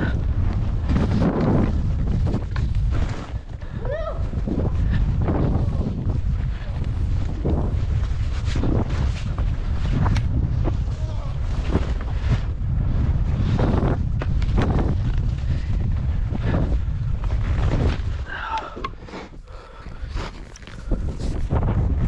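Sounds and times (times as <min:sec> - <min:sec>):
wind rushing over microphone: 0:00.0 - 0:22.0.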